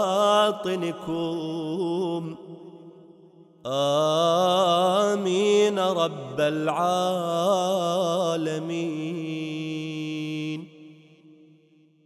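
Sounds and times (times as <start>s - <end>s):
reverberant echo: 0.0s - 12.0s.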